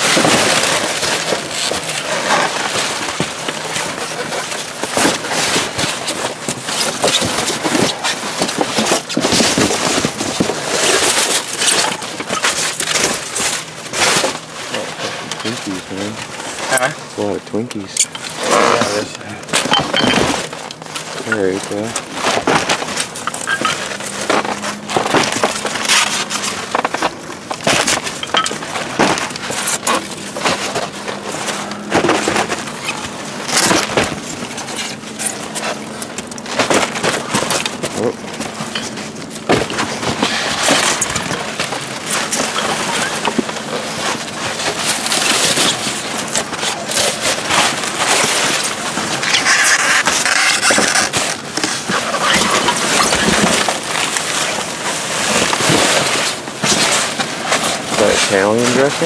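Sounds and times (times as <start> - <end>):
rummaging through trash: 0.0 - 59.0.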